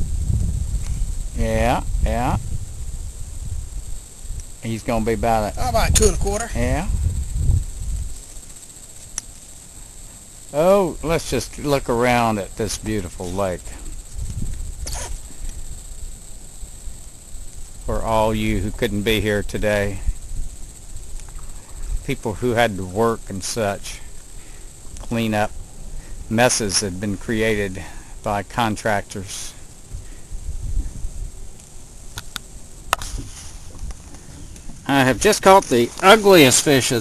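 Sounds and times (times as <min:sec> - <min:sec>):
wind rumble on microphone: 0:00.0 - 0:08.4, 0:12.8 - 0:23.1, 0:29.8 - 0:37.0
insects droning: 0:00.0 - 0:37.0.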